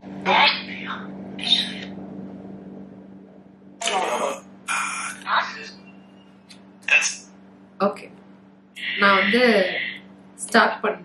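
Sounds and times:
steady low hum: 0:00.0 - 0:11.0
garbled static bursts: 0:03.8 - 0:05.7, 0:08.8 - 0:10.0.

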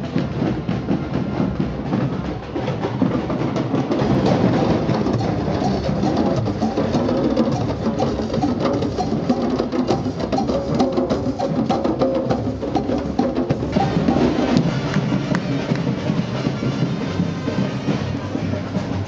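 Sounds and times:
djembe hand drums: 0:00.1 - 0:19.0.

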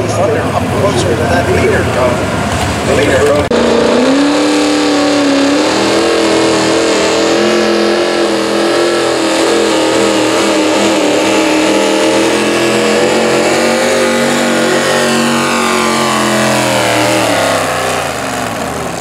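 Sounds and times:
tractor engine revving under load: 0:02.2 - 0:19.0.

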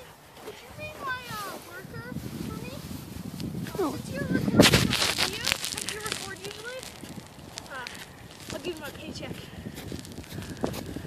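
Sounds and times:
loud rustling burst: 0:02.2 - 0:09.1.

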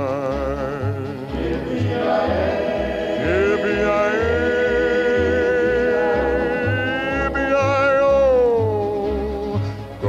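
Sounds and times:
pulsing bass line: 0:00.0 - 0:10.0
singer holding long vibrato note: 0:01.6 - 0:08.1.

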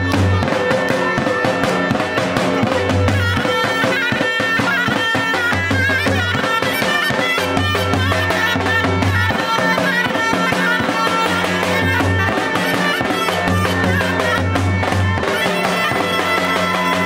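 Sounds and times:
clarinet melody: 0:00.0 - 0:17.0
fast drum beat: 0:00.0 - 0:17.0.

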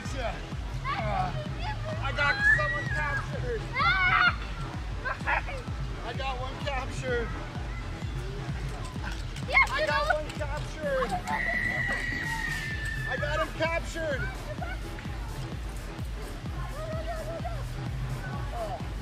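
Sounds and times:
background music: 0:00.0 - 0:19.0
children shrieking and squealing: 0:00.7 - 0:05.7, 0:06.9 - 0:15.4, 0:16.7 - 0:18.8.

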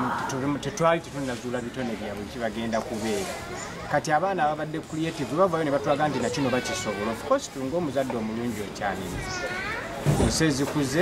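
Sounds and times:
man talking: 0:00.0 - 0:09.4, 0:10.2 - 0:11.0.

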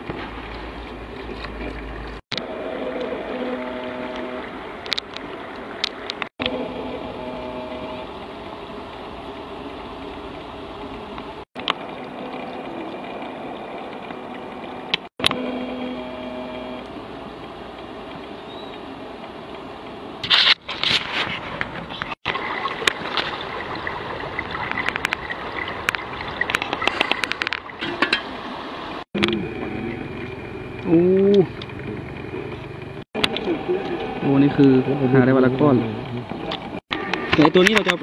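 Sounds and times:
distant engine hum: 0:21.4 - 0:37.3.

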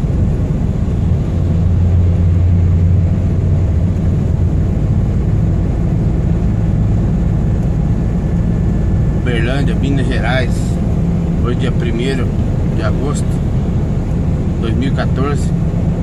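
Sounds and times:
truck engine and road noise: 0:00.0 - 0:16.0.

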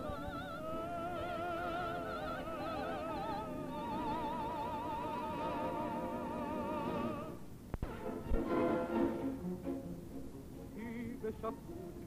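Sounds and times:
small orchestra with bowed strings: 0:00.0 - 0:12.0.

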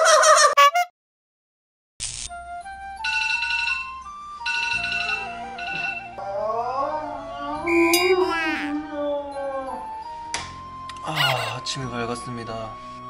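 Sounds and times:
electronic ringtone melody: 0:03.0 - 0:06.2
wavering vocal sound: 0:06.2 - 0:10.0.

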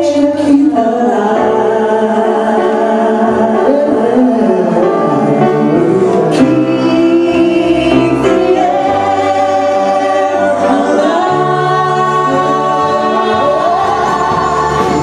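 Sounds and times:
live band accompaniment: 0:00.0 - 0:15.0
mixed voices singing in harmony: 0:00.0 - 0:15.0.

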